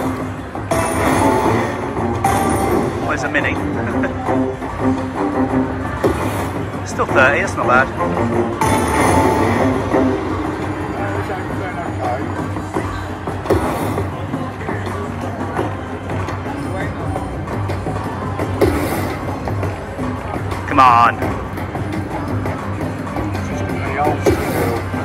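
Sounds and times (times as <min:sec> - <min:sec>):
slot machine music and jingles: 0:00.0 - 0:05.6, 0:07.2 - 0:12.8
crowd chatter: 0:00.0 - 0:25.0.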